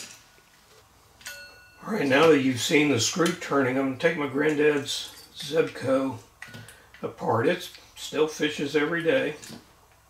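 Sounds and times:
metal part clinking and ringing: 1.2 - 2.3.

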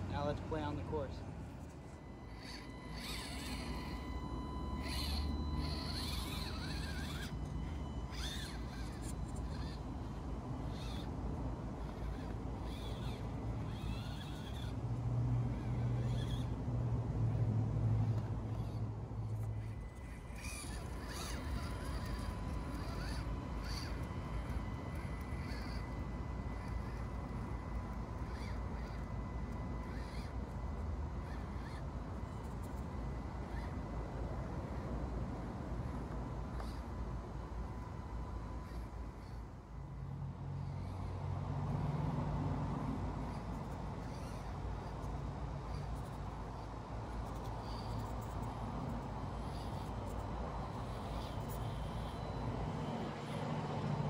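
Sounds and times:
small electric motor and gears: 0.0 - 54.0.

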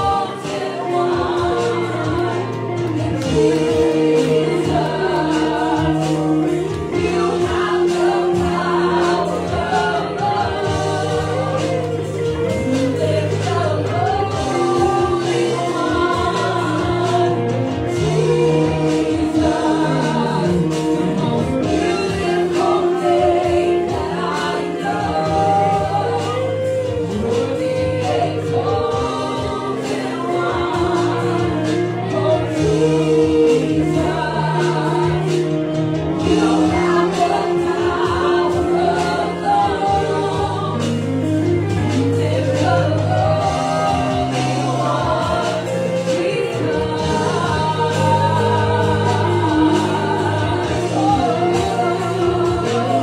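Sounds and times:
congregation singing worship song: 0.0 - 53.0
instrumental backing low notes: 0.0 - 53.0.

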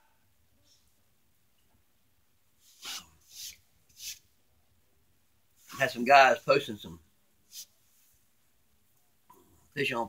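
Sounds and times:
man sniffing: 2.7 - 4.2.

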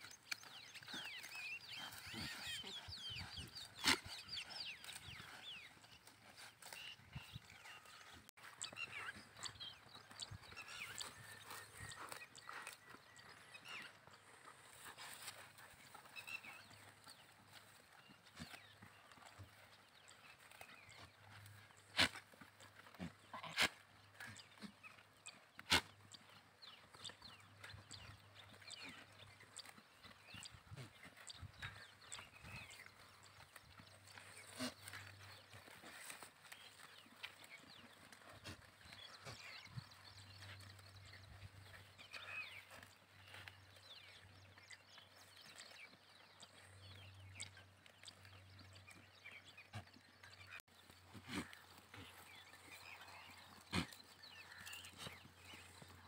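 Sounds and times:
grazing sheep and goats: 0.0 - 56.0.

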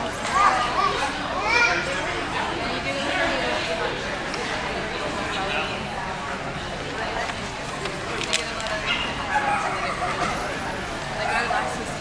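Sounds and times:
chatter of spectators in a hall: 0.0 - 12.0.

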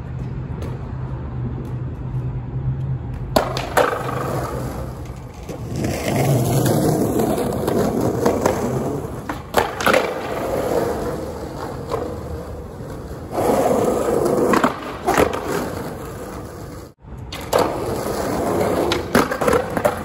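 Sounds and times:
skateboard clacks: 1.7 - 20.0
wheels rolling over rough concrete: 3.4 - 20.0.

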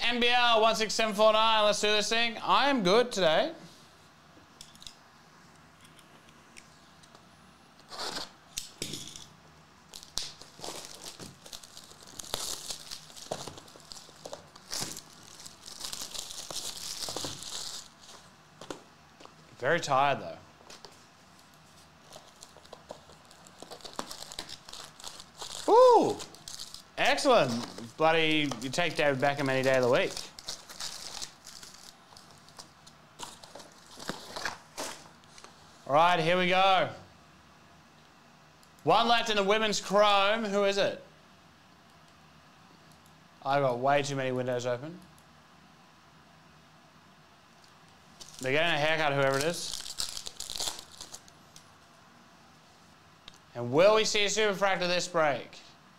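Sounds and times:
plastic shrink-wrap rustling: 9.9 - 18.3, 20.7 - 35.6, 48.1 - 51.7
foil packs crinkling: 9.9 - 18.8, 21.4 - 35.2, 48.2 - 51.7.

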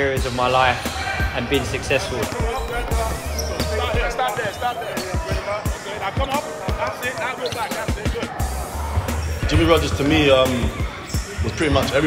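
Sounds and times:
background music with bass: 0.0 - 6.8, 7.8 - 12.0
faint voices: 0.0 - 12.0
basketballs bouncing on floor: 1.9 - 4.6.

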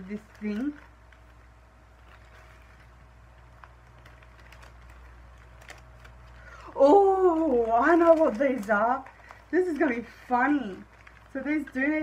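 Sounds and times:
low steady hum: 0.0 - 12.0
plastic items clicking and rustling: 0.0 - 12.0.

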